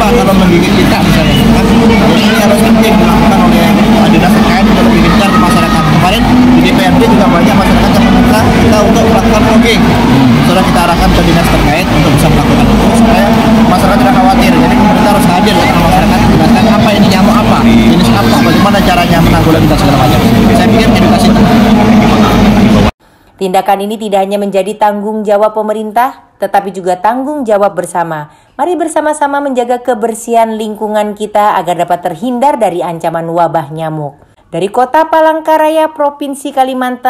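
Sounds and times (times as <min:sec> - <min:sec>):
man speaking: 0:00.0 - 0:22.5
loud low drone: 0:00.0 - 0:23.0.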